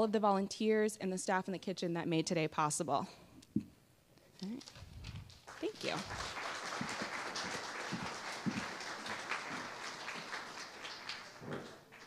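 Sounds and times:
audience applauding: 5.2s - 12.0s.

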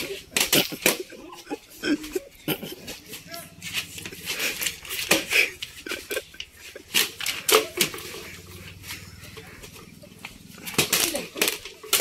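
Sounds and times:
boys grunting: 0.0s - 11.6s.

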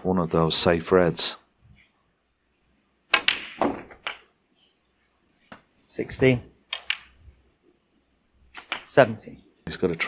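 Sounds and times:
snooker balls clicking: 3.1s - 4.3s, 6.7s - 7.2s, 8.5s - 9.2s.

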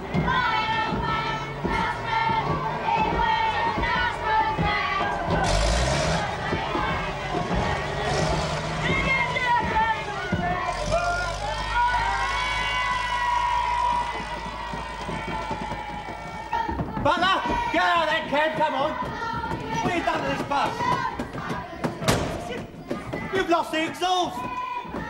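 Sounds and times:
bus engine running: 0.0s - 16.5s
children shouting and singing: 0.0s - 25.0s.

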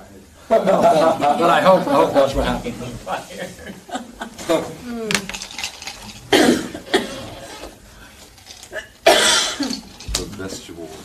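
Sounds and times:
person coughing: 6.3s - 7.4s, 8.7s - 9.8s.

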